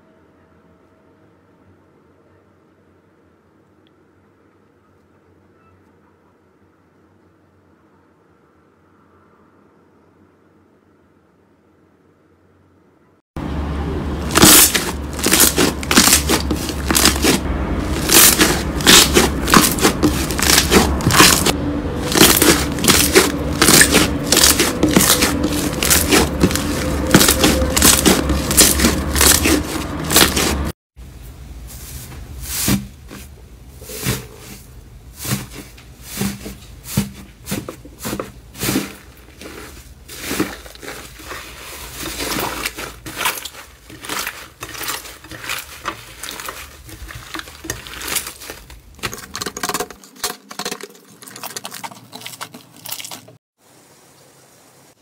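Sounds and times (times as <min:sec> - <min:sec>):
slime squishing and crackling: 0:14.2 - 0:30.7, 0:37.5 - 0:53.4.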